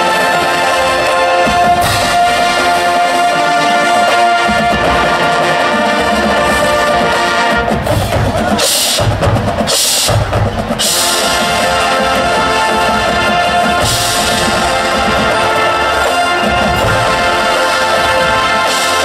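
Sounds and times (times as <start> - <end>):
brass sustained chords: 0.0 - 8.0, 10.8 - 19.0
low percussion: 0.0 - 19.0.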